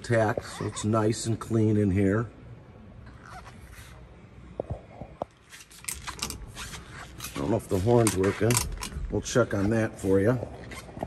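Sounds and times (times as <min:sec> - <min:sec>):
rubbing and scraping: 0:05.4 - 0:11.0.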